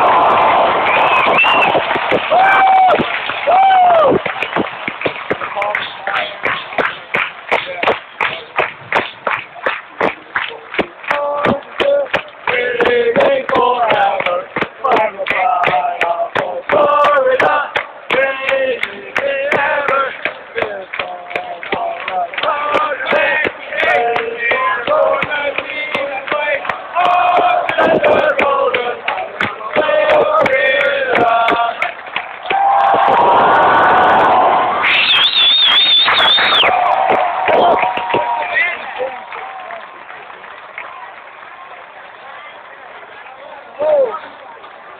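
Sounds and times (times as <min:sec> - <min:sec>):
loud high cheer: 0:00.0 - 0:07.5, 0:29.8 - 0:42.6
crowd clapping in time: 0:00.0 - 0:44.9
crowd singing: 0:10.9 - 0:33.3.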